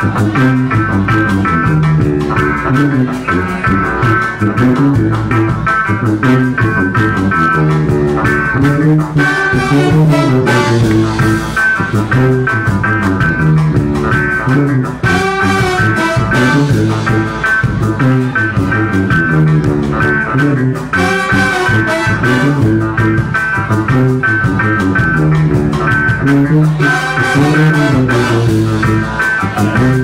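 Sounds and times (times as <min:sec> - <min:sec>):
trombones and brass horns: 0:00.0 - 0:13.8, 0:14.4 - 0:30.0
drum kit: 0:00.0 - 0:30.0
live band playing: 0:00.0 - 0:30.0.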